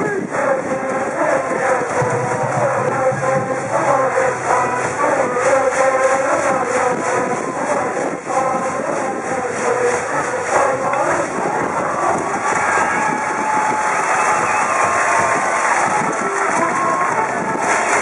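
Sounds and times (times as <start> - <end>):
crowd singing and chanting: 0.0 - 18.0
brass band playing: 1.9 - 7.1.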